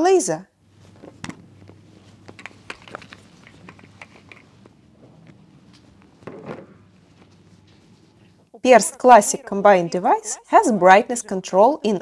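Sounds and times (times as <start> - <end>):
soft rustle: 0.6 - 8.5.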